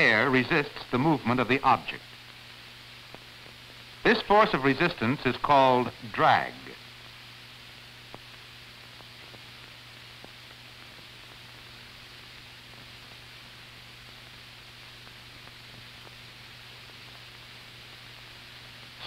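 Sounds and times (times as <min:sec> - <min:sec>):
film soundtrack hiss: 0:00.0 - 0:19.0.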